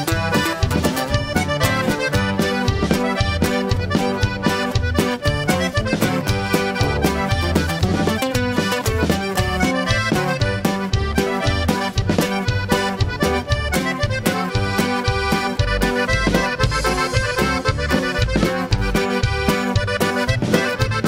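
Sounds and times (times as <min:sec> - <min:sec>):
button accordion melody: 0:00.0 - 0:21.0
drum kit beat: 0:00.0 - 0:21.0
electric bass: 0:00.0 - 0:21.0.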